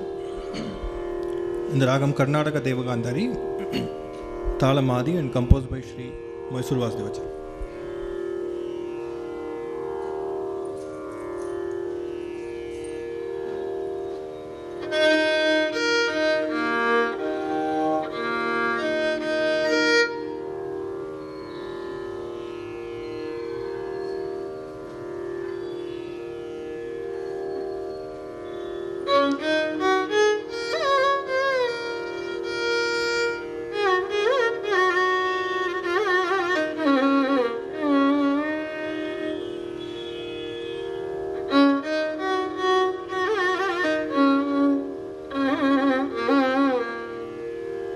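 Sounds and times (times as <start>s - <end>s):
tanpura drone: 0.0s - 47.9s
violin with sliding ornaments: 0.0s - 47.9s.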